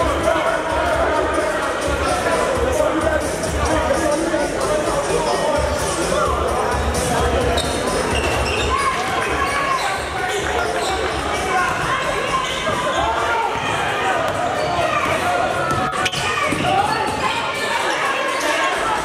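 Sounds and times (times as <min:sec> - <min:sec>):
music playing: 0:00.0 - 0:12.4
people talking and shouting: 0:00.0 - 0:19.0.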